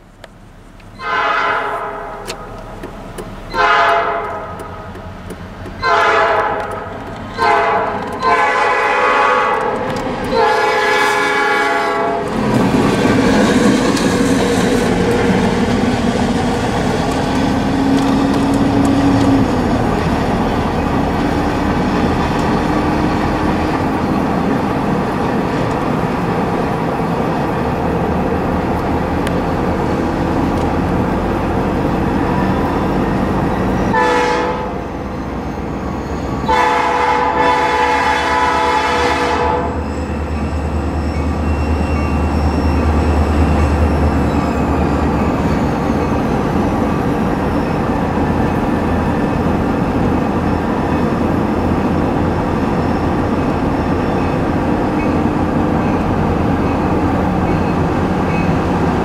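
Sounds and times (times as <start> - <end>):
train and road running noise: 0.0 - 59.0
locomotive air horn: 1.0 - 2.6, 3.5 - 5.0, 5.8 - 12.4, 33.9 - 35.0, 36.3 - 40.2.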